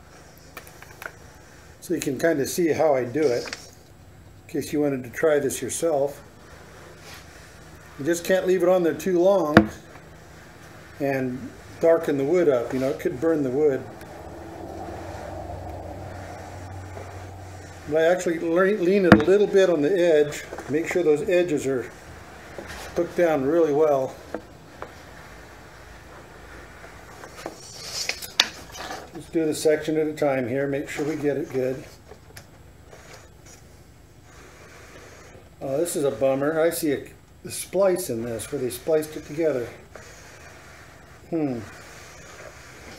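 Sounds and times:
low steady hum: 0.0 - 42.9
iron rubbing on wood edge: 5.8 - 28.9, 37.8 - 42.9.

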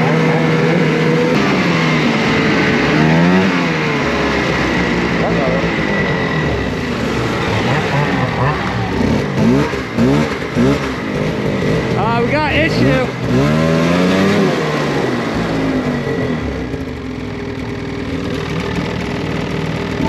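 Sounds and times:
snowmobile engines running: 0.0 - 20.0
snowmobile throttle blips: 0.0 - 20.0.

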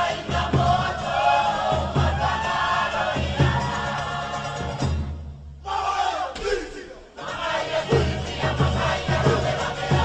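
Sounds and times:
drumming: 0.0 - 5.3, 7.2 - 10.0
group shouts: 5.6 - 7.1.

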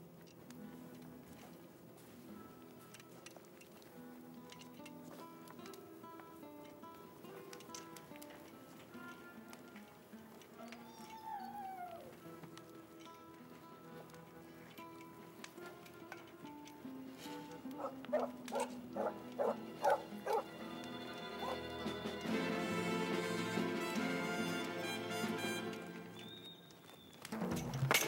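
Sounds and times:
dog whining: 10.6 - 12.1, 17.7 - 20.5, 21.4 - 21.6
film score music: 14.8 - 26.6
dog barking: 17.7 - 20.5, 21.4 - 21.6.

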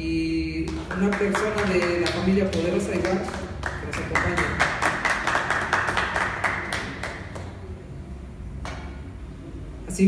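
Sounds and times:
people applauding: 0.7 - 7.8.

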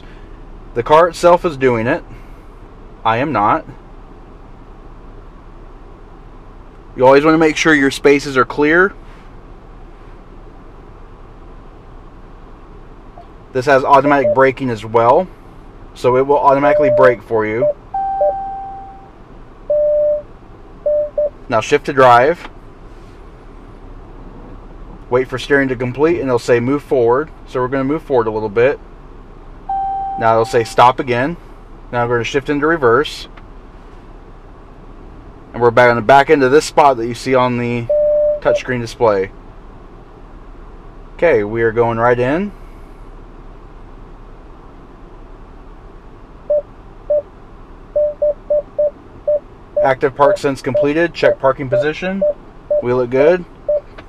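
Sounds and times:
low cabin hum: 0.0 - 54.0
electronic warning beep: 14.0 - 14.5, 16.5 - 19.1, 19.7 - 21.4, 29.7 - 30.8, 37.8 - 38.7, 46.5 - 47.2, 48.0 - 53.0, 53.7 - 53.9.

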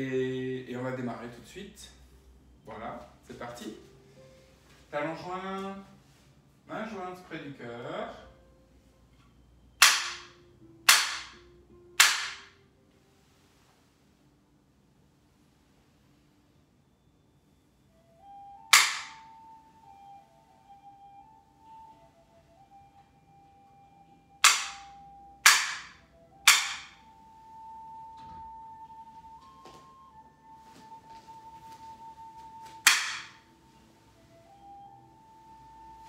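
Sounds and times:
faint background music: 0.0 - 36.0
wooden clapper cracks: 9.8 - 10.3, 10.9 - 11.4, 12.0 - 12.5, 18.7 - 19.2, 24.4 - 27.0, 32.8 - 33.4.

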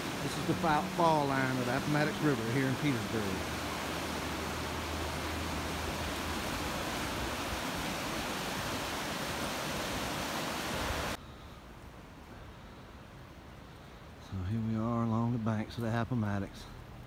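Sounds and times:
river rapids rushing over rocks: 0.0 - 11.2.

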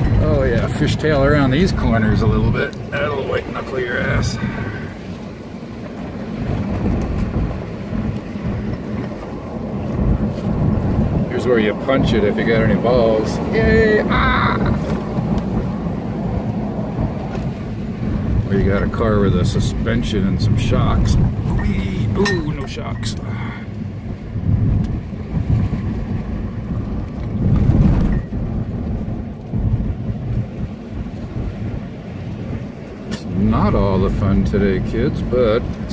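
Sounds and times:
car cabin rumble on dirt road: 0.0 - 35.9
car body jostling over bumps: 4.2 - 11.3.

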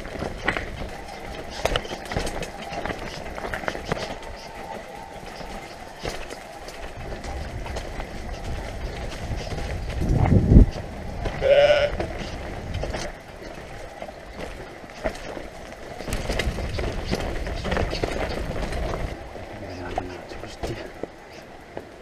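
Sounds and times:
bike tyres rattling over stones: 0.0 - 22.0
wind buffeting microphone: 0.0 - 22.0.

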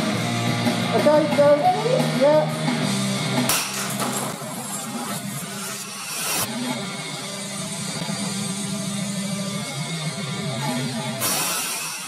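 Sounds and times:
heavy rock music: 0.0 - 12.0
glass shattering: 3.5 - 6.3.

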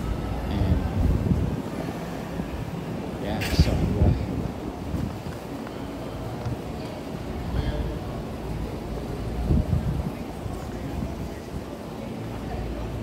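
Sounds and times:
wind buffeting microphone: 0.0 - 11.8.

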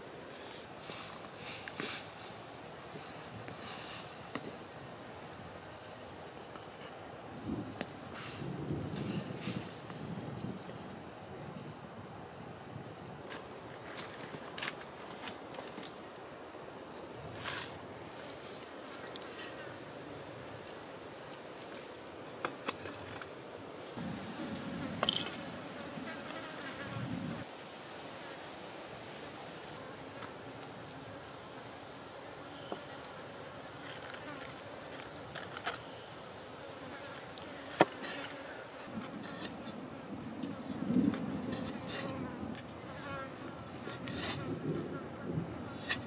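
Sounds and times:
high insect drone: 0.0 - 46.0
insect buzzing close: 24.0 - 27.5.

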